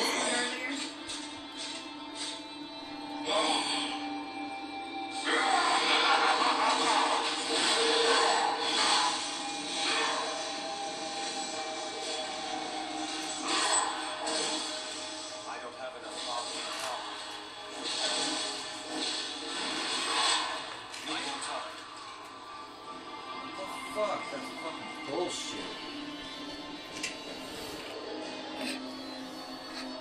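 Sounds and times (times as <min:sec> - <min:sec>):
indistinct television voices: 0:00.0 - 0:30.0
television music: 0:00.0 - 0:30.0.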